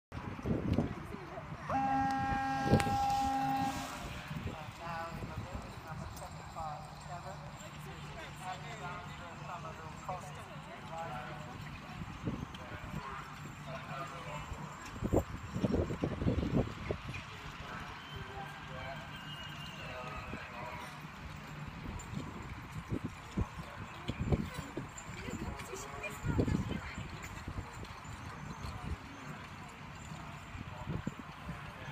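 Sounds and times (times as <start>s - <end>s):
electronic buzzer tone: 1.7s - 4.0s.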